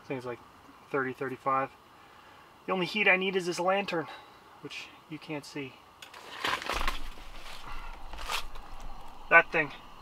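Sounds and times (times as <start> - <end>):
brief rustle: 6.0 - 9.2
camera handling rumble: 6.0 - 9.3.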